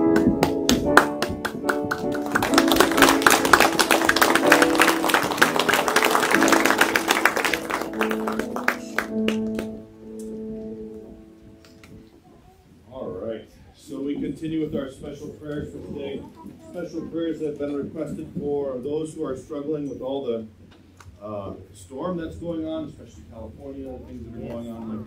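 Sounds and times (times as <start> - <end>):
grand piano playing: 0.0 - 12.2.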